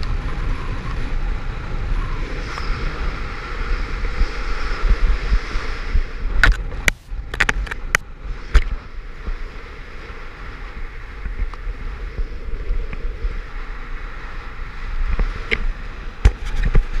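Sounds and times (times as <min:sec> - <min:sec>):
wind rushing over microphone: 0:00.0 - 0:17.0.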